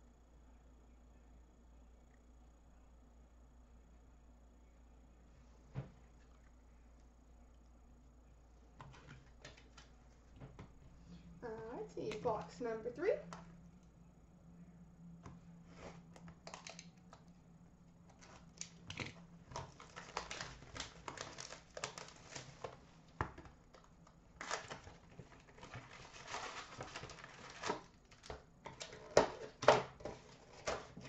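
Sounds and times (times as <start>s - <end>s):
crinkling plastic wrap: 18.2s - 22.8s, 23.7s - 29.6s
rustling cardboard: 24.4s - 31.0s.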